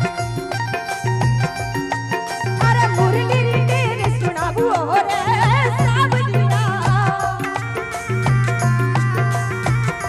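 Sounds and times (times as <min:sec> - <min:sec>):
dholak drum strokes: 0:00.0 - 0:10.0
keyboard melody: 0:00.0 - 0:10.0.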